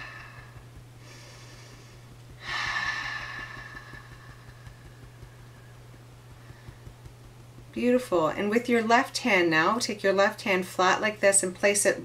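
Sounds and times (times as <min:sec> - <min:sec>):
woman exhaling deeply: 0:00.0 - 0:04.7.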